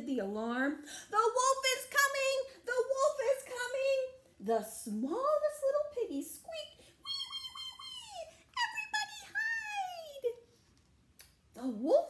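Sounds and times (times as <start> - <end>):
woman squealing like piglet: 7.0 - 10.2.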